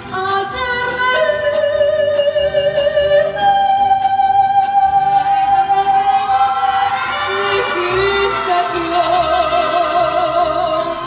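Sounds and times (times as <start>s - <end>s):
mariachi band with violins: 0.0s - 11.0s
woman singing with vibrato: 0.0s - 11.0s.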